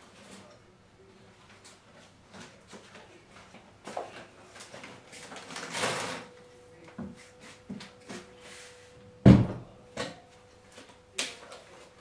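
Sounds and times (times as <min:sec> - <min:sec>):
faint steady hum: 0:00.0 - 0:12.0
loud thump: 0:09.2 - 0:09.7.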